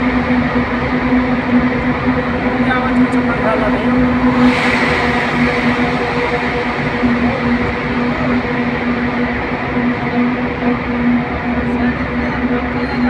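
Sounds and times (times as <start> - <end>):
car engine and tyre rumble: 0.0 - 13.0
constant low hum: 0.0 - 13.0.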